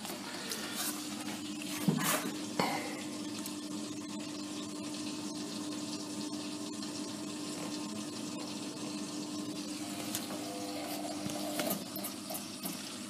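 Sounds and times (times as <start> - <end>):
running water: 0.0 - 13.0
washing machine hum: 0.0 - 13.0.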